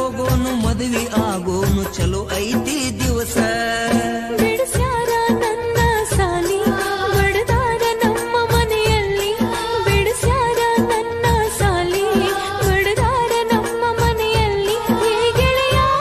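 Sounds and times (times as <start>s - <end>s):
steady drum beat: 0.0s - 16.0s.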